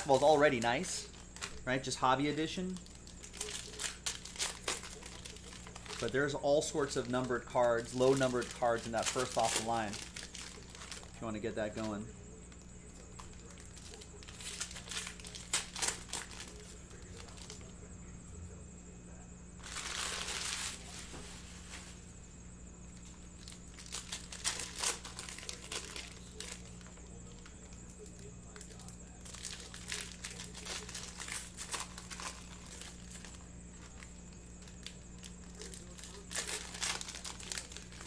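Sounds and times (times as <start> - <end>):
foil packs tearing: 0.0 - 12.1, 12.8 - 17.7, 19.6 - 22.0, 23.0 - 38.0
wrappers crinkling: 0.0 - 17.7, 19.6 - 22.2, 22.9 - 38.0.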